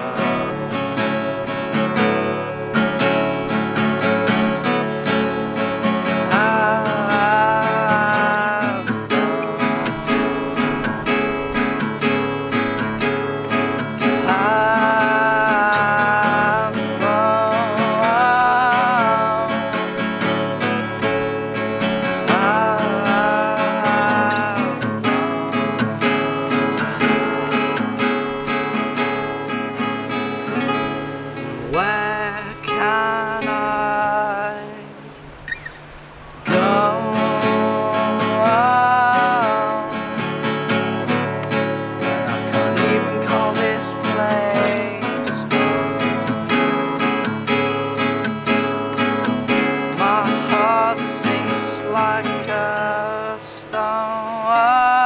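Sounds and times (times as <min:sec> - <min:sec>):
man singing: 0:00.0 - 0:29.8, 0:31.6 - 0:35.2, 0:36.5 - 0:55.0
acoustic guitar strumming: 0:00.0 - 0:55.0.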